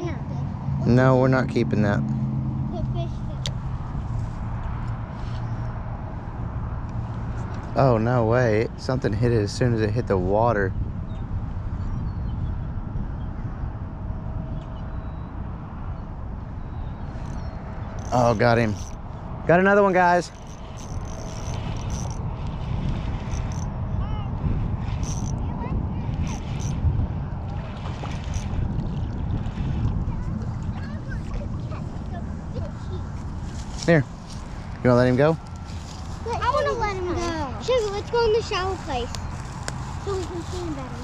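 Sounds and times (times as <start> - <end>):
constant low hum: 0.0 - 41.0
wind rumbling on microphone: 0.0 - 41.0
fishing rod click: 18.0 - 19.0, 20.3 - 23.7, 25.0 - 25.3, 26.1 - 26.8.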